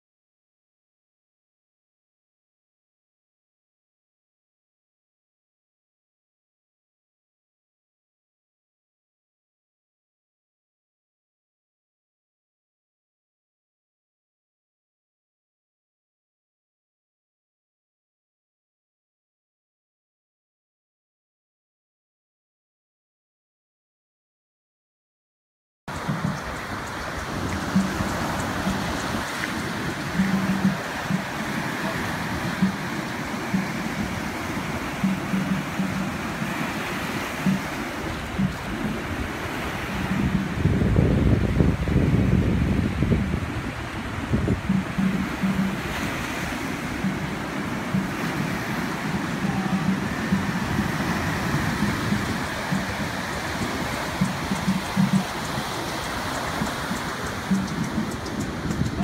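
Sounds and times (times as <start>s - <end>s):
surf breaking on beach: 25.9s - 59.0s.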